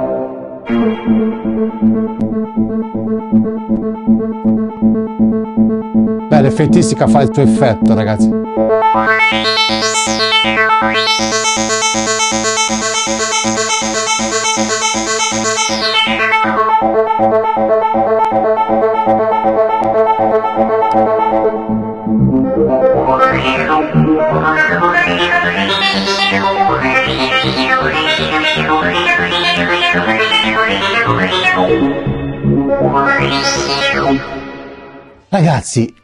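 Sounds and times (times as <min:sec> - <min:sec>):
synthesizer repeating notes: 0:00.7 - 0:35.2.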